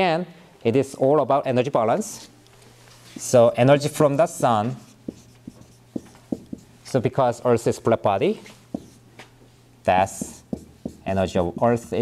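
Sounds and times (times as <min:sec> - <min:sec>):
marker writing on whiteboard: 0:04.0 - 0:06.8, 0:08.4 - 0:09.1, 0:10.0 - 0:12.0.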